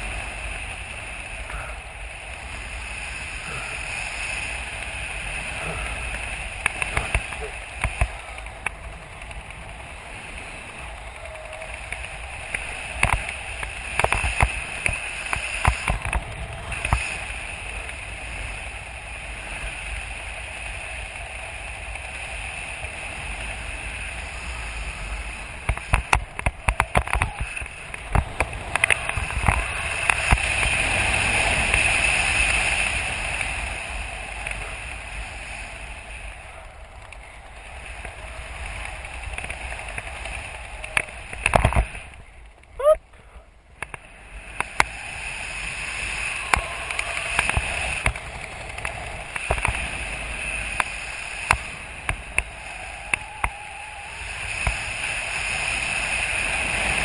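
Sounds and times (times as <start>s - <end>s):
wind buffeting microphone: 0.0s - 43.0s, 43.6s - 57.0s.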